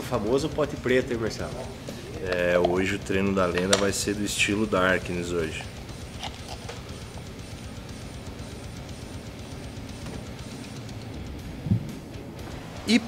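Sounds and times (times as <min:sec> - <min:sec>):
background music with low beat: 0:00.0 - 0:13.0.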